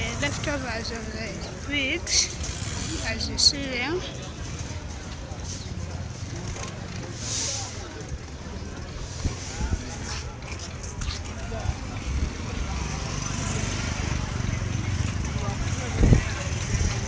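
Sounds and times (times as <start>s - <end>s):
passing vehicle traffic: 0.0s - 17.0s.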